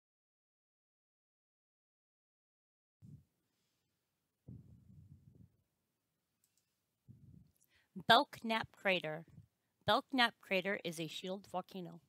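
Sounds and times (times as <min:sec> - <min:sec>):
faint low sound: 0:03.0 - 0:05.8, 0:07.0 - 0:07.6
person speaking: 0:04.5 - 0:05.6, 0:07.1 - 0:12.0.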